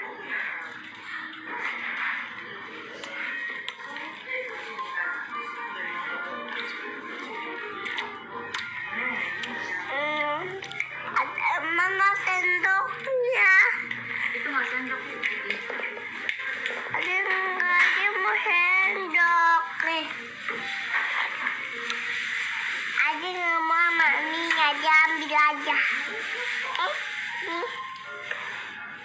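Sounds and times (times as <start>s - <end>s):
background music: 0.0s - 29.0s
young child talking: 11.2s - 13.8s, 17.0s - 20.1s, 23.0s - 26.0s, 26.7s - 27.8s.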